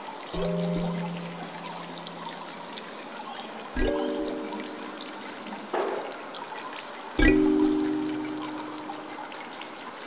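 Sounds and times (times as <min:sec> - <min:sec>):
waterfall splashing: 0:00.0 - 0:10.0.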